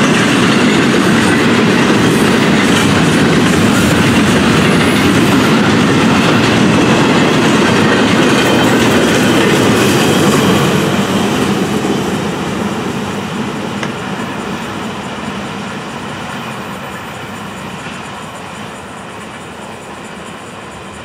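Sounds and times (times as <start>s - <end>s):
freight train wheels rumbling on rails: 0.0s - 21.0s.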